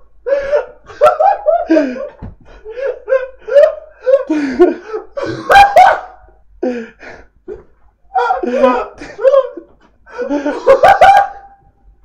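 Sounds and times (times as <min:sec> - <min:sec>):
men laughing hard: 0:00.2 - 0:07.2, 0:08.1 - 0:11.7.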